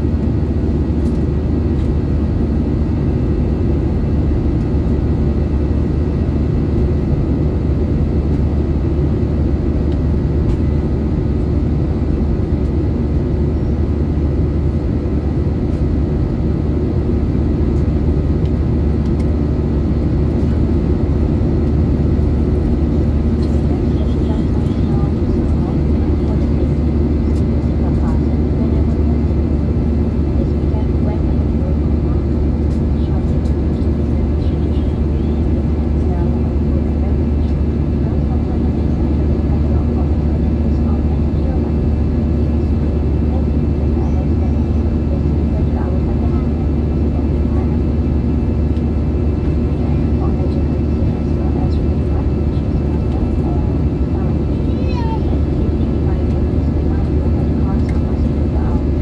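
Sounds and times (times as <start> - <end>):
airliner cabin engine rumble: 0.0 - 59.0
murmur of passenger voices: 0.0 - 59.0.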